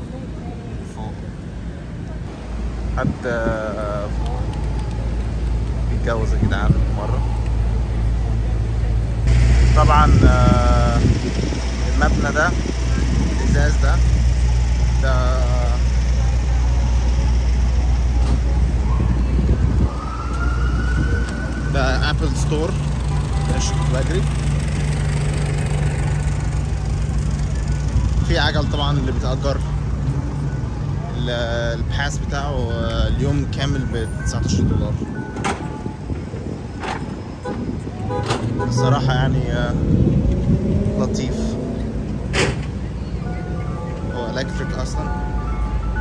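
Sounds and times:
rumble of passing cars: 0.0 - 46.0
siren rising in pitch: 18.5 - 22.8.

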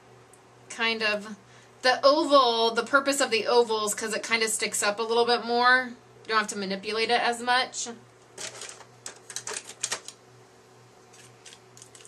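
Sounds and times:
cardstock paper crackling: 8.4 - 10.2, 11.1 - 12.0.

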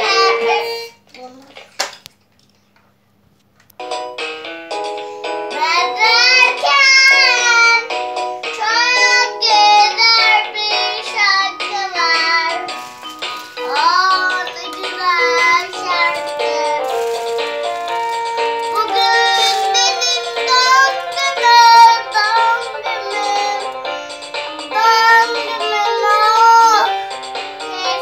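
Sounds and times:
child singing: 0.0 - 1.6, 5.5 - 7.9, 8.6 - 12.7, 13.6 - 23.8, 24.4 - 26.9, 27.6 - 28.0
toy keyboard melody: 3.8 - 28.0.

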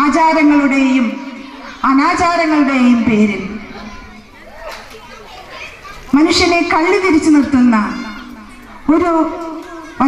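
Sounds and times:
faint background voices: 3.4 - 10.0.

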